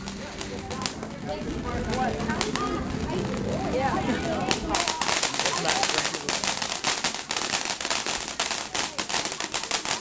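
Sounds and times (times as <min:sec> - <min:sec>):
firework fountain crackling: 0:00.0 - 0:10.0.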